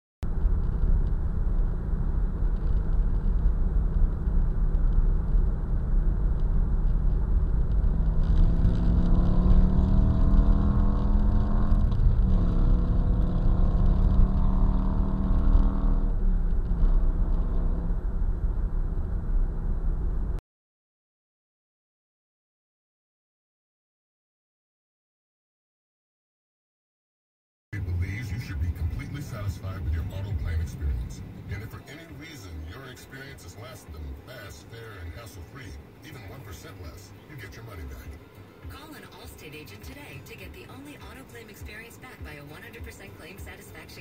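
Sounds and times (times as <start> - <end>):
car engine and road rumble: 0.2 - 20.4, 27.7 - 44.0.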